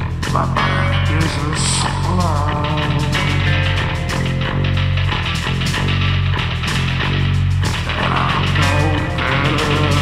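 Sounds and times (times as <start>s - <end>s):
loud repeating bass line: 0.0s - 10.0s
rock band instrumental: 0.0s - 10.0s.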